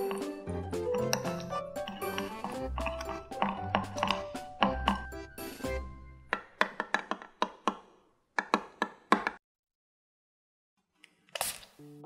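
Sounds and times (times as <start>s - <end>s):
stirring rod clinking against glass: 0.9s - 5.1s.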